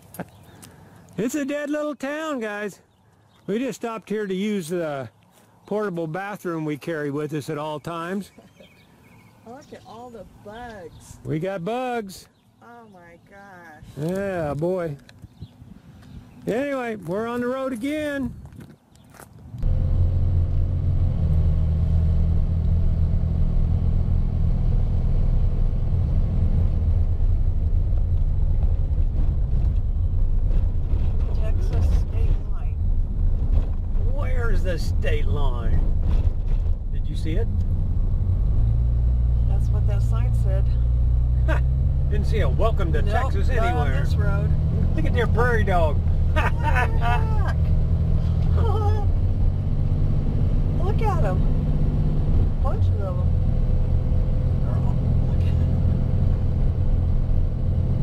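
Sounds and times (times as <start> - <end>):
engine and road rumble: 0.0 - 58.0.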